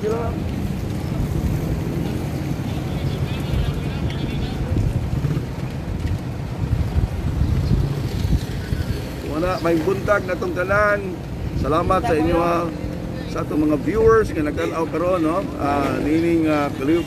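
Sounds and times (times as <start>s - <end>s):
faint voices: 0.0s - 6.0s
wind buffeting microphone: 0.0s - 17.0s.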